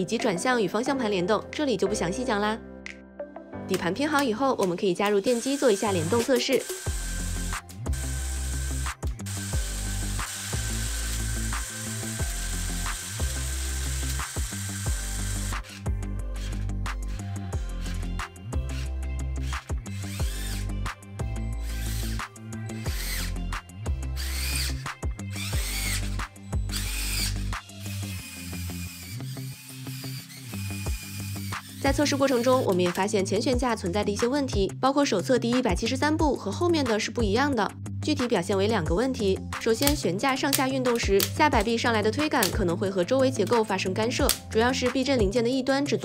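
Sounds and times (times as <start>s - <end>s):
small electric motors whirring: 5.0s - 33.0s
music with deep bass line: 6.9s - 28.2s.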